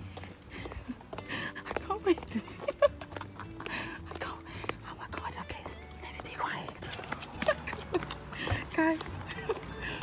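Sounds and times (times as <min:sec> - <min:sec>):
footsteps on pavement: 0:00.0 - 0:10.0.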